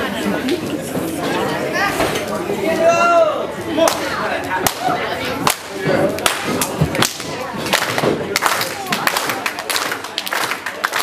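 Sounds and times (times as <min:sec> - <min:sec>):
crowd chatter in echoing hall: 0:00.0 - 0:11.0
sharp hand claps: 0:04.6 - 0:11.0.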